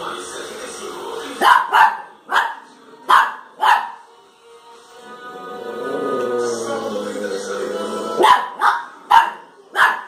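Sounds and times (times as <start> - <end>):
faint music or tv sound: 0.0 - 10.0
small dog barking: 1.4 - 4.0, 8.2 - 10.0.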